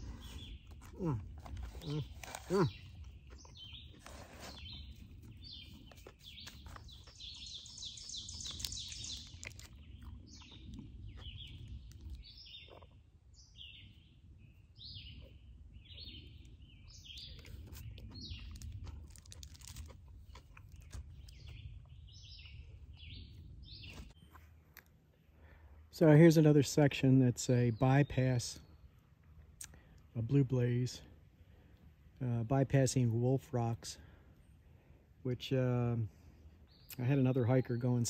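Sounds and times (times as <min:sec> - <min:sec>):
songbirds chirping: 0:00.0 - 0:38.0.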